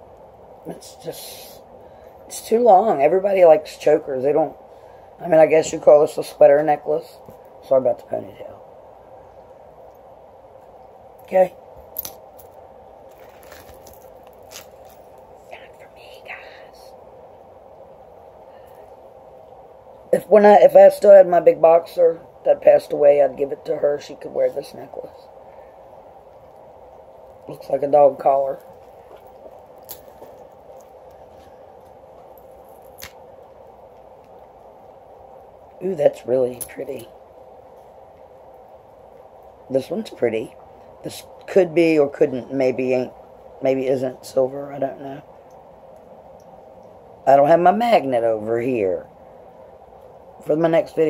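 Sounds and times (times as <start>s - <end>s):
steady low hum: 0.0s - 51.0s.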